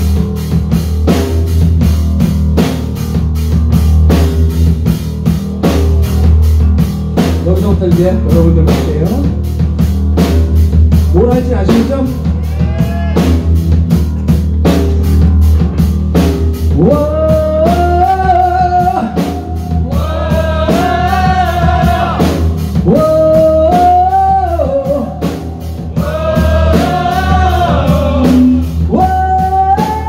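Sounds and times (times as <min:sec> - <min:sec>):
bass guitar: 0:00.0 - 0:30.0
drum kit cymbal beat: 0:00.0 - 0:30.0
person singing long notes: 0:25.9 - 0:30.0.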